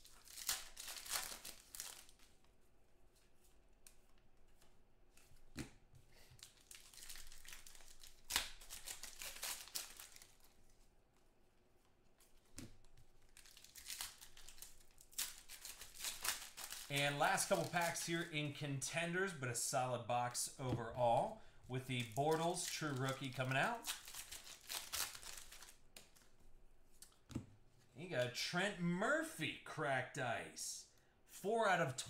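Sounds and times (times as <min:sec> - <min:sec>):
foil wrappers tearing open: 0:00.0 - 0:02.1, 0:06.4 - 0:10.4, 0:13.3 - 0:18.2, 0:22.1 - 0:25.8
foil wrappers crumpled by hand: 0:00.0 - 0:02.2, 0:06.4 - 0:10.5, 0:13.3 - 0:18.3, 0:22.0 - 0:25.8.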